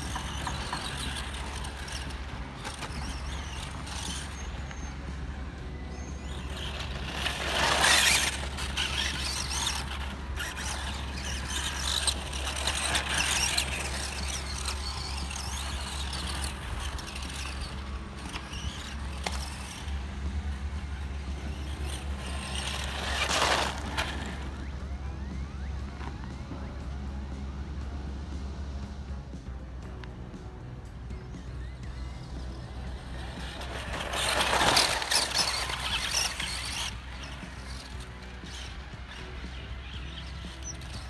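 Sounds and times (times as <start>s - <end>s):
tyres crunching on gravel: 0.0s - 26.4s, 31.5s - 41.0s.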